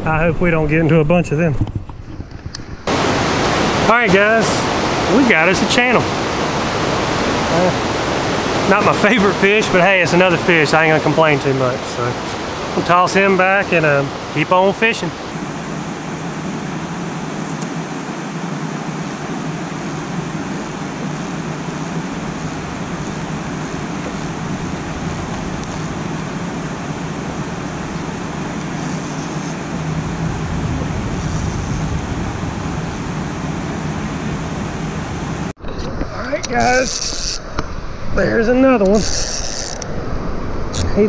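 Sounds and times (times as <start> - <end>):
river water rushing over a dam: 2.9 - 28.8
deep rumble: 29.9 - 36.2.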